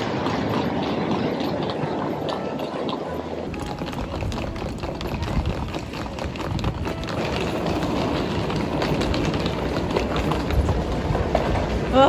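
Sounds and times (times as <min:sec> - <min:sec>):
busy airport hall noise: 0:00.0 - 0:12.0
suitcase wheels rolling on tiles: 0:00.0 - 0:12.0.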